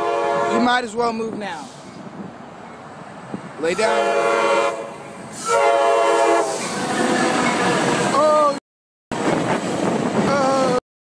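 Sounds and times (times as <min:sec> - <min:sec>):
train horn blast: 0:00.0 - 0:00.7, 0:03.8 - 0:06.8
train running on rails: 0:00.0 - 0:10.8.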